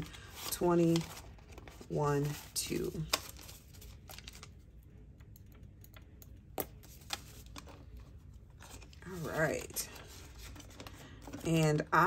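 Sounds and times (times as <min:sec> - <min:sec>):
banknotes rustling: 0:00.0 - 0:04.6, 0:06.7 - 0:12.0.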